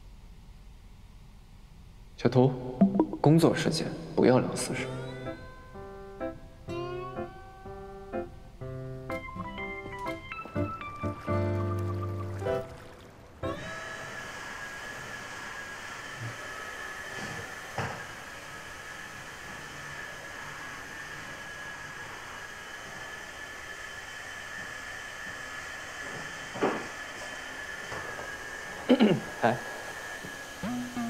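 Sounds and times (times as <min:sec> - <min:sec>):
background music: 0:02.8 - 0:12.8
stick vacuum whining: 0:13.4 - 0:22.4, 0:29.6 - 0:31.0.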